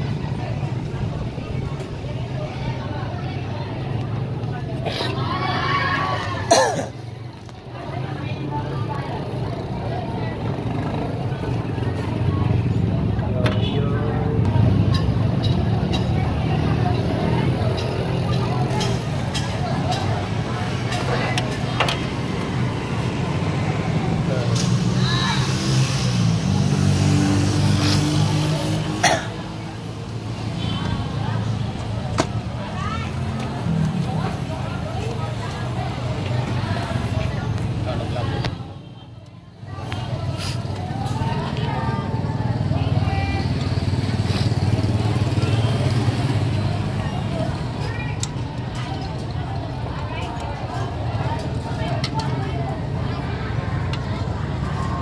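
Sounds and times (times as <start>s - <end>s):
indistinct talking: 0.0s - 55.0s.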